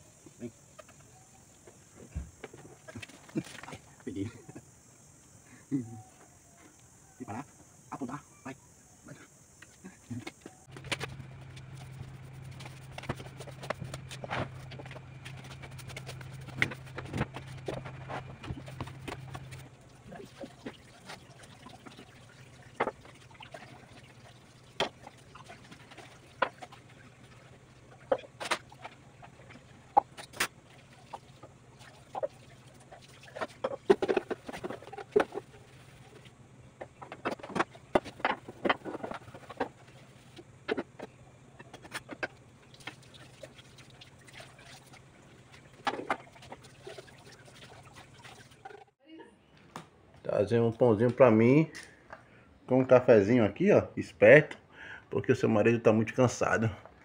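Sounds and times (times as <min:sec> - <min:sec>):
steady low hum: 0:00.0 - 0:49.6.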